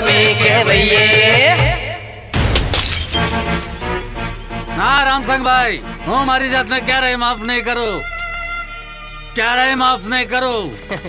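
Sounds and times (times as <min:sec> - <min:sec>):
background music: 0:00.0 - 0:11.0
glass bottles smashing: 0:02.4 - 0:03.9.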